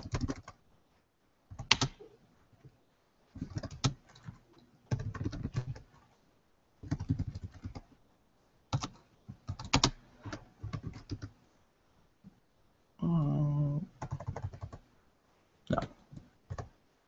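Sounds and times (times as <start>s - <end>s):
computer keyboard typing: 0.0s - 0.6s, 1.5s - 2.0s, 3.4s - 5.9s, 6.8s - 7.9s, 8.7s - 11.3s, 14.0s - 14.8s, 16.5s - 16.7s.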